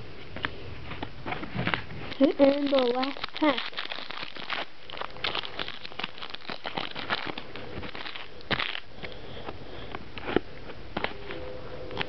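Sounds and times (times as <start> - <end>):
foil wrapper crinkling: 1.4 - 9.4.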